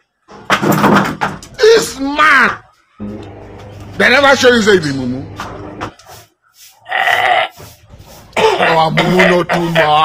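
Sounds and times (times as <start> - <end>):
knocks: 0.3 - 1.5.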